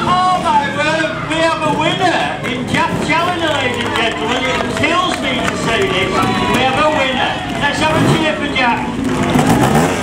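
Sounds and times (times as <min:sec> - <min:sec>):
voices talking: 0:00.0 - 0:09.7.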